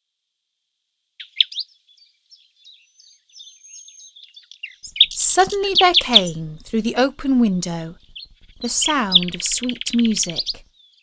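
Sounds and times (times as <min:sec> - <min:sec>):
songbird singing: 0:01.2 - 0:11.0.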